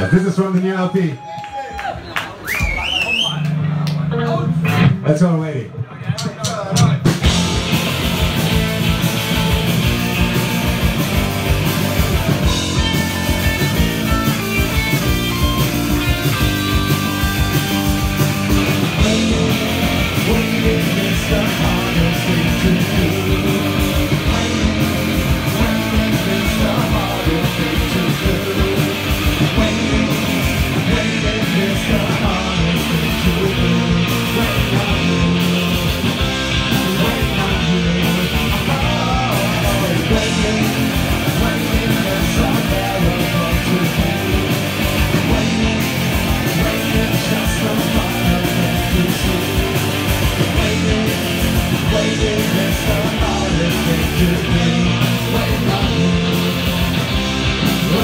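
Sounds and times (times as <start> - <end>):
punk rock band playing live: 3.5 - 58.0.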